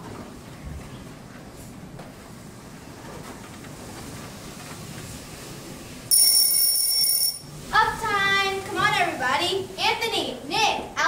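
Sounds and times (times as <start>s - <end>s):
electronic alarm ring: 6.1s - 7.6s.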